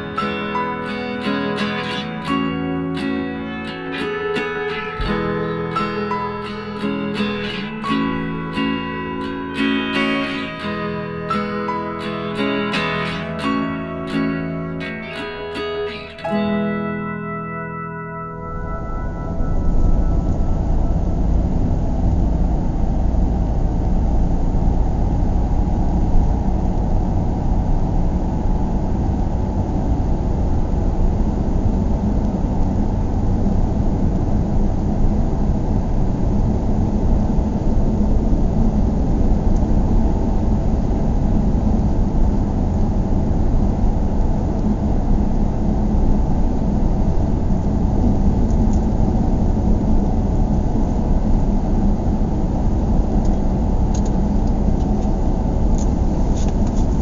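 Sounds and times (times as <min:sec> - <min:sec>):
car engine and road noise: 0:00.0 - 0:57.0.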